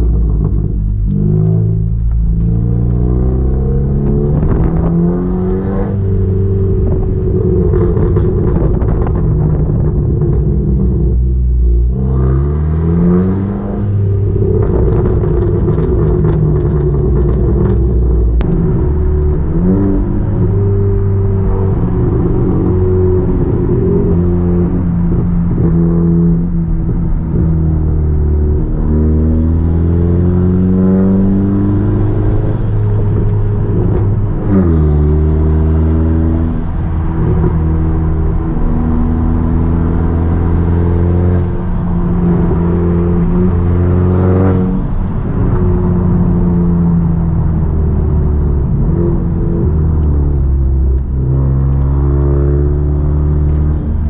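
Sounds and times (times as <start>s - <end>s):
car engine accelerating through gears: 0.0s - 54.0s.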